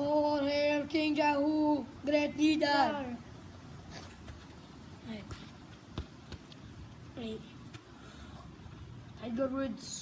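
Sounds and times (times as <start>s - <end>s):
faint outdoor background noise: 0.0s - 10.0s
foot knocking football: 5.3s - 6.6s.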